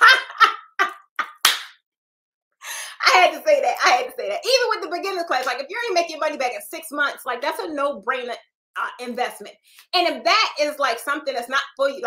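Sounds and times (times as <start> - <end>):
woman laughing: 0.0 - 1.4.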